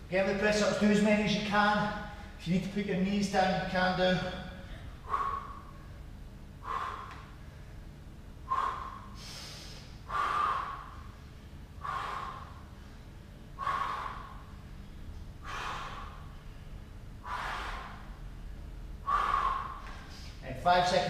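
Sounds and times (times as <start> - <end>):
man breathing hard: 4.2 - 20.4.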